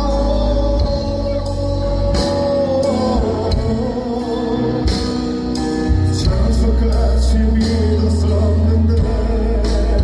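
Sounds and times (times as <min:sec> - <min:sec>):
band with guitar: 0:00.0 - 0:10.0
person singing: 0:00.0 - 0:10.0.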